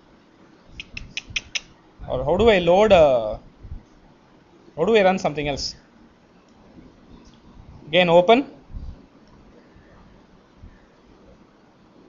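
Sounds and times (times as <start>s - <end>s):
light computer clicks: 0.8s - 1.7s.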